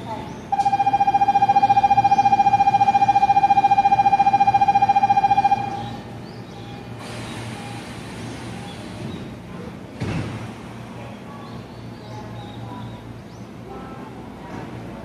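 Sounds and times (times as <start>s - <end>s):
departure buzzer: 0.5s - 6.0s
train doors hissing shut: 7.0s - 9.3s.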